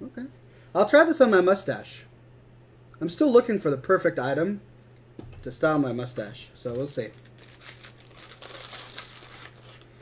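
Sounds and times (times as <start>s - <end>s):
low electrical hum: 0.0s - 10.0s
plastic packaging crinkling: 6.6s - 10.0s.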